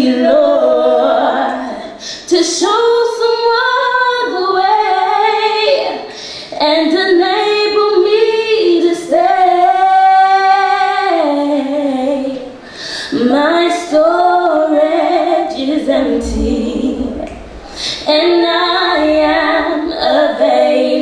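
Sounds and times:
women singing worship song: 0.0s - 21.0s.

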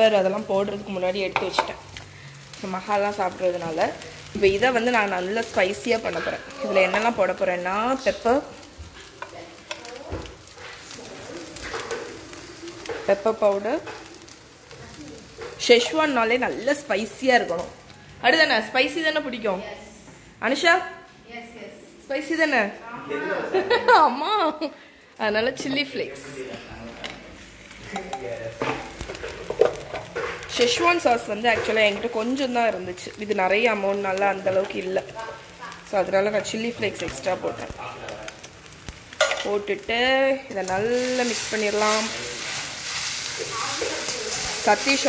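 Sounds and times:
frying sizzle: 0.0s - 21.0s, 22.1s - 45.0s
noodles stirred in a wok: 27.4s - 45.0s.

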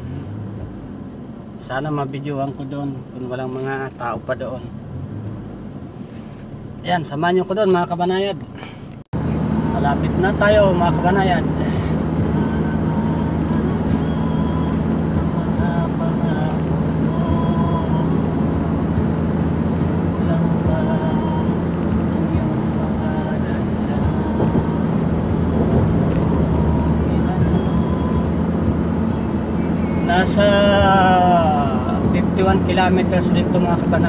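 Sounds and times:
car road and engine noise: 0.0s - 34.0s.

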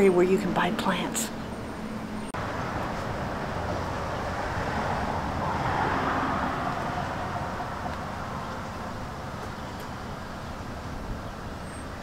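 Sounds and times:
outdoor background rush: 0.0s - 12.0s.

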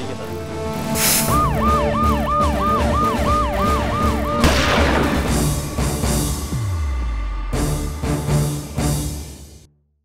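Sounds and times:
siren in fast yelp: 1.3s - 4.6s.

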